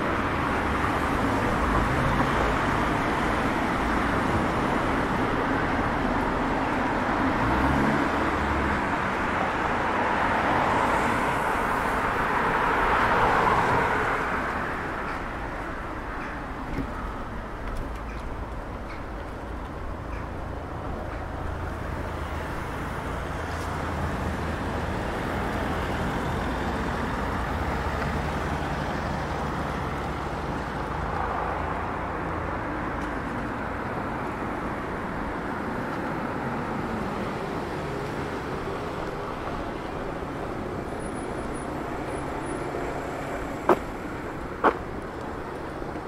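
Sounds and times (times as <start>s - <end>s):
passing cars rushing: 0.0s - 46.0s.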